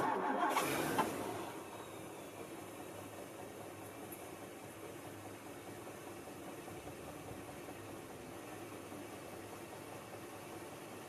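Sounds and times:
car engine starting and idling: 0:00.0 - 0:11.0.

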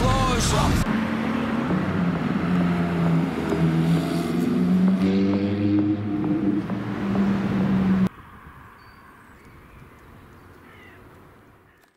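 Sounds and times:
sports car engine driving: 0:00.0 - 0:08.1.

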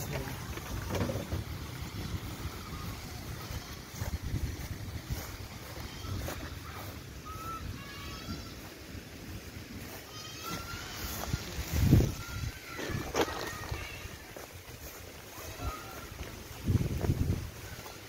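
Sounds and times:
wind rumbling on microphone: 0:00.0 - 0:08.6, 0:10.9 - 0:18.0.

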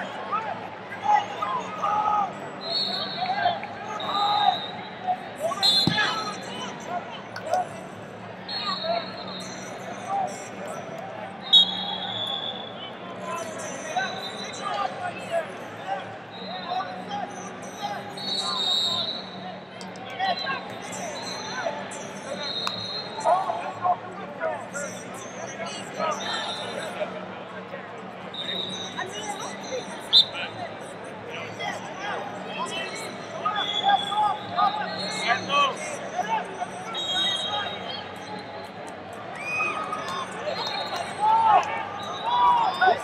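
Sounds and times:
crowd chatter: 0:00.0 - 0:43.0
murmur of voices in arena: 0:00.0 - 0:43.0
held high whistle tone: 0:05.6 - 0:06.4
shrill whistle blast: 0:05.6 - 0:06.4, 0:11.4 - 0:12.7, 0:18.2 - 0:19.3, 0:37.0 - 0:38.0.

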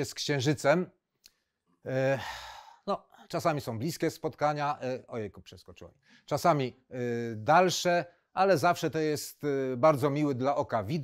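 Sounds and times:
man sighing: 0:02.0 - 0:02.8.

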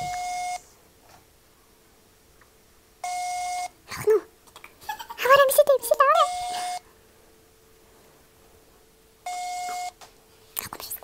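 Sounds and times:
telephone call-progress beeps: 0:00.0 - 0:00.7, 0:03.0 - 0:03.8, 0:06.1 - 0:06.8, 0:09.2 - 0:10.0.

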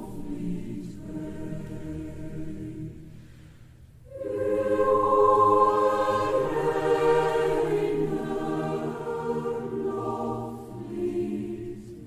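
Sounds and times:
slow choral music: 0:00.0 - 0:12.0.

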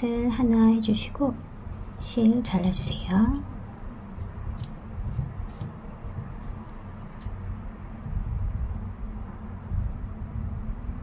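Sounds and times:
low background rumble: 0:00.0 - 0:11.0
scissors snipping yarn: 0:04.2 - 0:05.8.

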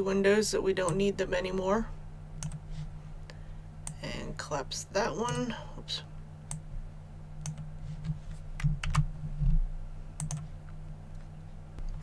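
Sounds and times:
steady low hum: 0:00.0 - 0:12.0
computer mouse clicks: 0:02.4 - 0:02.6, 0:10.2 - 0:10.4.

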